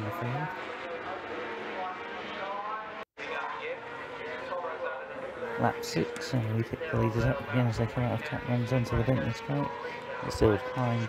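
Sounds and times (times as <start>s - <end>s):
motorcycle engines revving: 0.0s - 11.0s.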